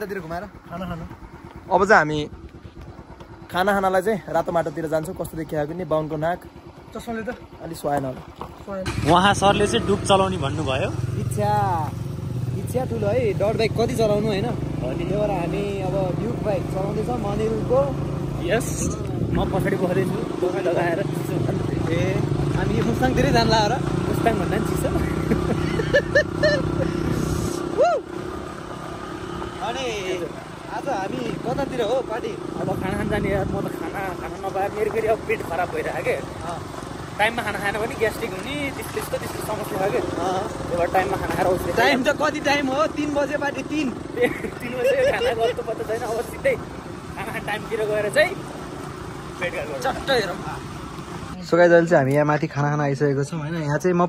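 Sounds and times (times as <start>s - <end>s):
motorcycle engine running: 0.0s - 51.9s
road and wind noise: 0.0s - 54.0s
men calling out: 8.8s - 50.9s
loud rising shout: 27.5s - 28.3s.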